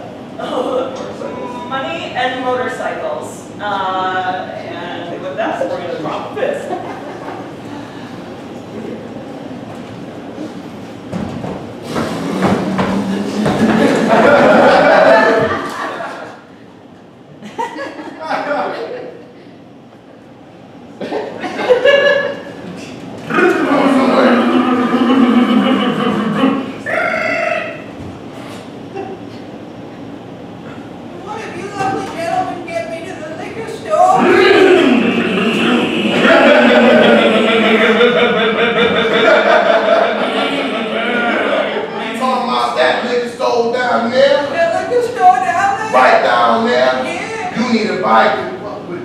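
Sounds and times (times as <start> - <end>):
person imitating motorbike engine: 23.3 - 27.8, 34.1 - 42.0
person making drawn-out vocal noise: 23.3 - 27.8, 34.2 - 39.1, 40.0 - 42.0
short higher vocal sound: 34.2 - 38.7, 40.0 - 42.0.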